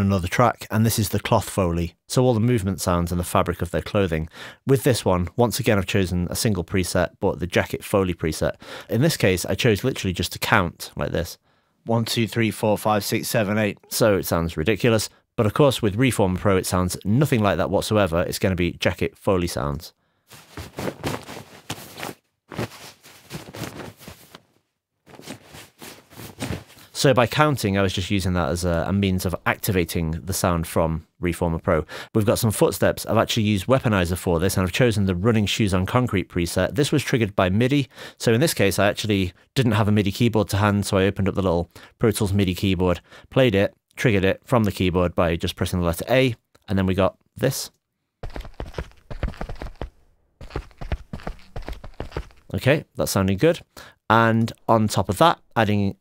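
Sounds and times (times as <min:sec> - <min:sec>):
jacket fabric rustling: 0:20.3 - 0:27.0, 0:48.2 - 0:52.5
running footsteps on concrete: 0:48.2 - 0:52.5.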